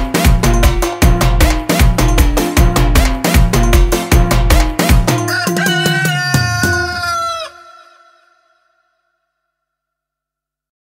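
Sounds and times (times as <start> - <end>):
soca music beat: 0.0 - 7.0
rooster crowing: 5.2 - 8.8.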